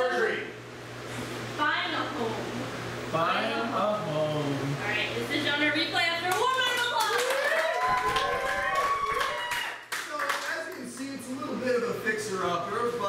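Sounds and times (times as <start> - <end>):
audience clapping: 6.3 - 11.4.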